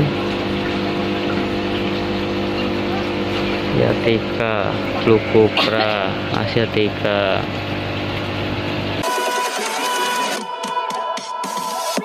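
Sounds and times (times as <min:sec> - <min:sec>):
buzzy low hum: 0:00.0 - 0:09.0.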